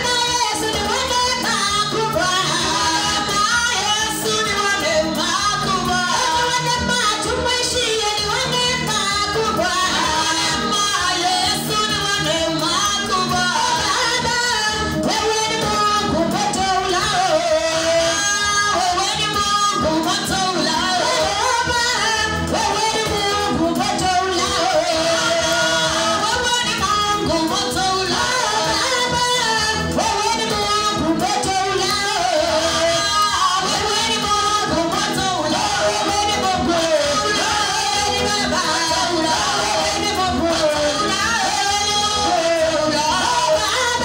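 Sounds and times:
musical accompaniment: 0.0 - 44.0
woman singing through microphone: 0.0 - 44.0.

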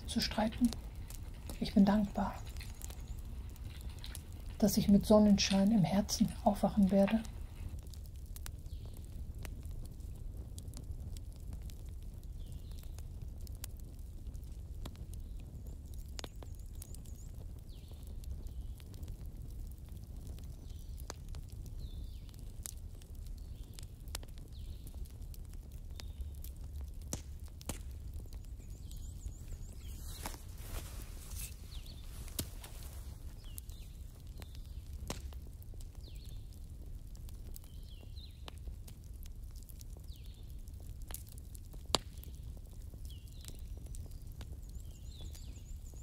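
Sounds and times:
wood fire crackling: 0.0 - 46.0.

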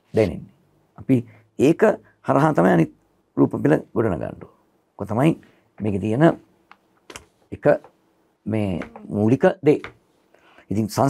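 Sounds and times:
man speaking: 0.0 - 6.5, 7.5 - 10.0, 10.7 - 11.0.

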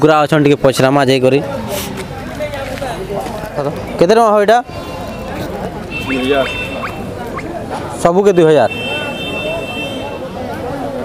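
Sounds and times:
market noise: 0.0 - 11.0
poultry squeaking: 5.4 - 7.6.

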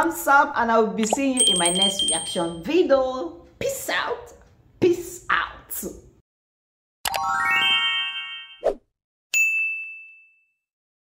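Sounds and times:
notification bell ding: 1.0 - 2.7, 9.4 - 10.6.

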